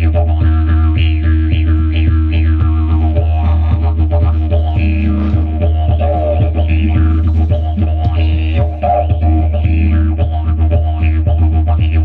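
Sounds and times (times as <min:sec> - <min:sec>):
didgeridoo drone: 0:00.0 - 0:12.0
percussive beat: 0:00.0 - 0:12.0.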